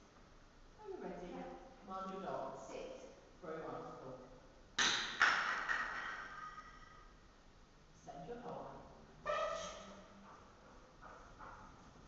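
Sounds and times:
sharp knocks of hard object: 0:04.8 - 0:06.2.

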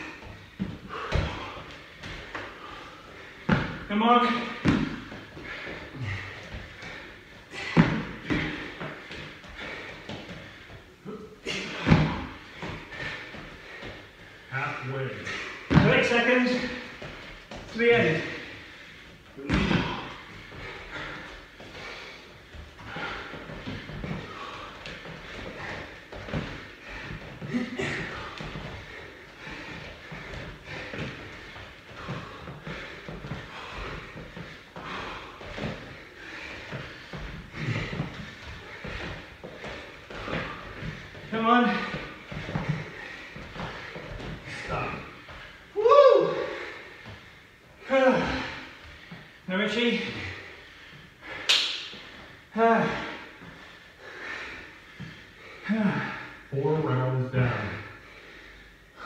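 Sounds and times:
feet thudding on gym mats: 0:00.0 - 0:56.3
heavy breathing: 0:00.0 - 0:59.0
strained grunts: 0:02.6 - 0:13.8, 0:19.4 - 0:22.2, 0:22.8 - 0:45.3, 0:47.8 - 0:49.1.

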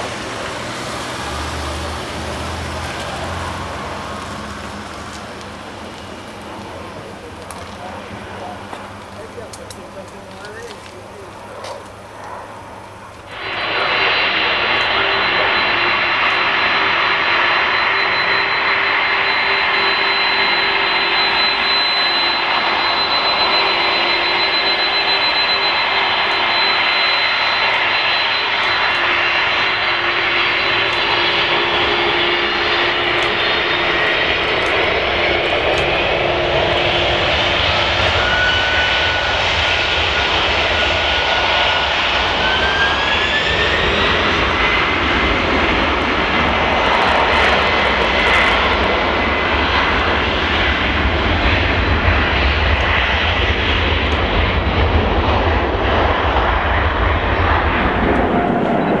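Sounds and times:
deep jet roar: 0:00.0 - 0:59.0
jet engines spooling up: 0:00.0 - 0:59.0.

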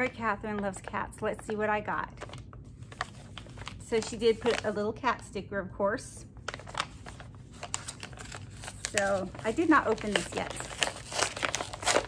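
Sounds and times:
paper envelope rustling: 0:02.2 - 0:04.8, 0:06.4 - 0:12.0.

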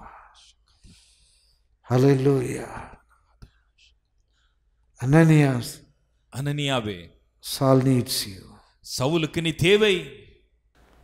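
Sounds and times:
soft breathing: 0:00.0 - 0:01.9, 0:03.0 - 0:05.0.

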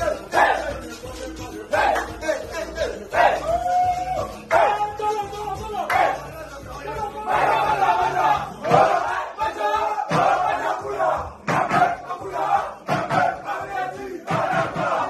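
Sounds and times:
men chanting and shouting: 0:00.0 - 0:15.0.

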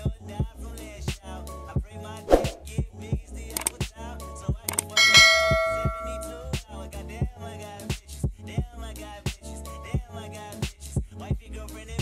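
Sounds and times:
hip hop music with steady beat: 0:01.8 - 0:06.7
bell chime: 0:04.9 - 0:06.5.

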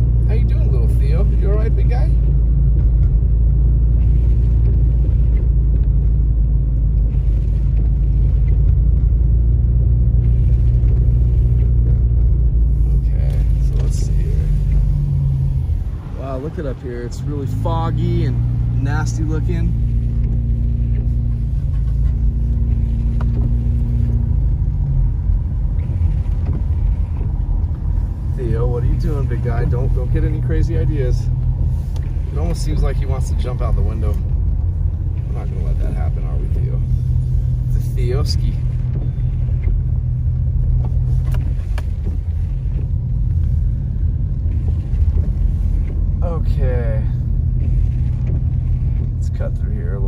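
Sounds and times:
car engine hum: 0:00.0 - 0:50.0
rough low rumble: 0:00.0 - 0:50.0
tyre noise on wet road: 0:00.0 - 0:50.0.

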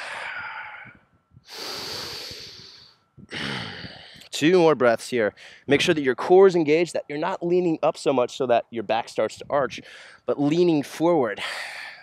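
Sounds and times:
man breathing out: 0:00.0 - 0:04.3.

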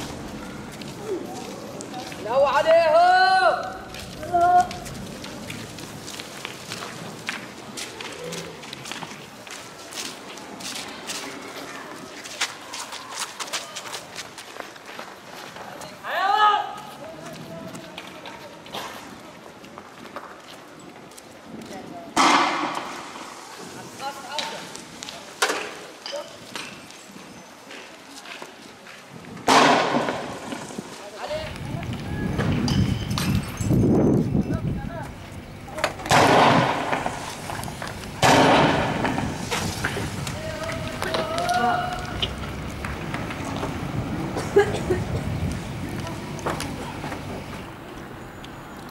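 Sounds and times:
person shouting: 0:02.7 - 0:04.7, 0:16.1 - 0:16.8
loud echoing bangs: 0:29.5 - 0:30.6, 0:36.0 - 0:40.0
low rumbling: 0:31.4 - 0:48.8.

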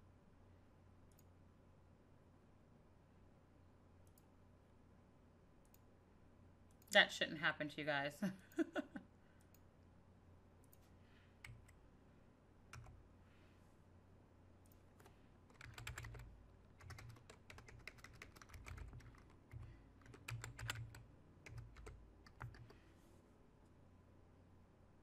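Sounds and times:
typing on a computer keyboard: 0:11.4 - 0:11.8, 0:12.7 - 0:13.0, 0:14.7 - 0:22.8.

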